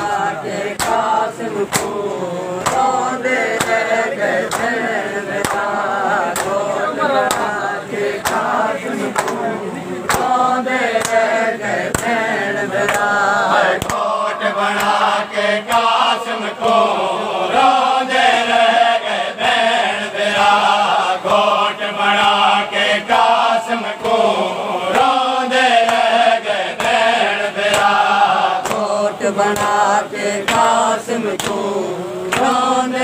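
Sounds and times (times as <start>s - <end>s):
men chanting in unison: 0.0s - 33.0s
hand slaps on chest: 13.8s - 14.0s.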